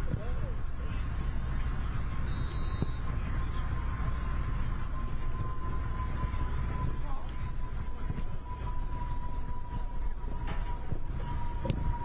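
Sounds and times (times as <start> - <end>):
soccer ball kick: 0.0 - 8.4
low rumble: 0.0 - 12.0.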